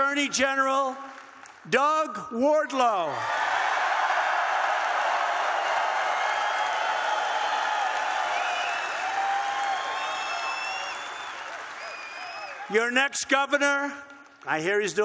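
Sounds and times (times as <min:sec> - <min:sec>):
crowd cheering and clapping: 0:03.1 - 0:12.9
shouts and whoops: 0:03.2 - 0:12.7.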